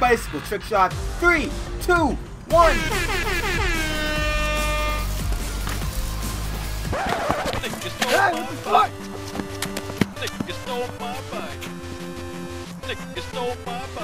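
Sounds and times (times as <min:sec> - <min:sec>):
background music with steady beat: 0:00.0 - 0:14.0
air horn blaring: 0:02.5 - 0:05.3
voice: 0:07.6 - 0:08.9, 0:10.2 - 0:11.6, 0:12.9 - 0:14.0.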